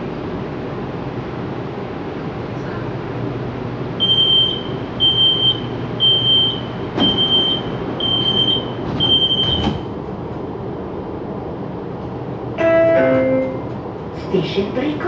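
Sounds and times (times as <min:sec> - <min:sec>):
train car hum: 0:00.0 - 0:15.0
short high warning beeps: 0:04.0 - 0:09.6
train doors shutting: 0:04.0 - 0:15.0.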